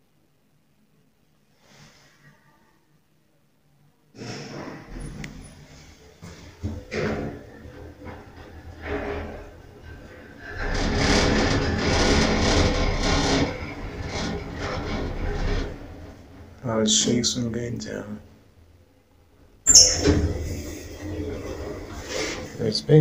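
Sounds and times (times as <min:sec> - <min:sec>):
elevator running: 0:04.9 - 0:18.7, 0:19.7 - 0:22.5
elevator cab rattling: 0:06.3 - 0:17.1.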